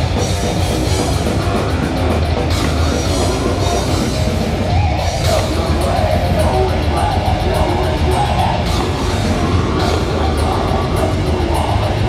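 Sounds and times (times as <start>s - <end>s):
death metal band playing live: 0.0s - 12.0s.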